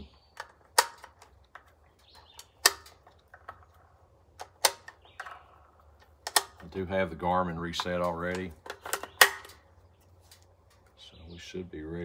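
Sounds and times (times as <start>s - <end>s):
cartridge clicking into magazine: 0.3s - 3.6s, 4.4s - 5.4s, 6.0s - 6.7s, 7.8s - 9.6s.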